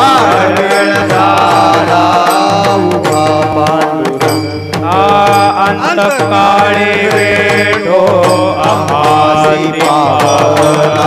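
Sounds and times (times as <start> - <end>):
steady drum beat: 0.0 - 11.0
sustained instrumental accompaniment: 0.0 - 11.0
voices chanting together: 0.0 - 11.0.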